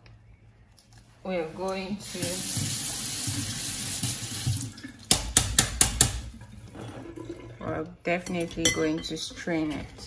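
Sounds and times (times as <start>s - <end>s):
kitchen tap running: 1.7s - 7.6s.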